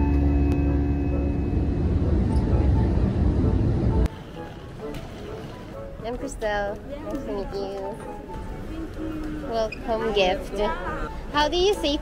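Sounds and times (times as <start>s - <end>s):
jet engine cabin rumble: 0.0s - 4.1s.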